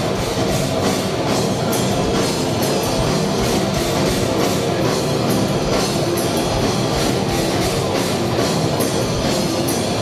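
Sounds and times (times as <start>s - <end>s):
punk rock band playing: 0.0s - 10.0s.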